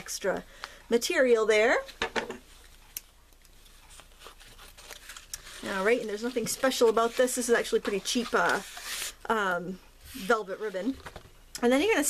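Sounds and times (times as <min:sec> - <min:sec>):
ribbon rustling: 0:03.4 - 0:09.2.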